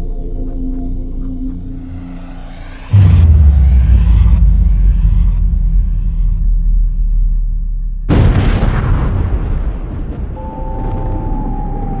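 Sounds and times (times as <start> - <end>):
music: 0.0 - 8.1, 10.3 - 12.0
low rumble: 1.0 - 11.8
deep boom: 2.7 - 11.0.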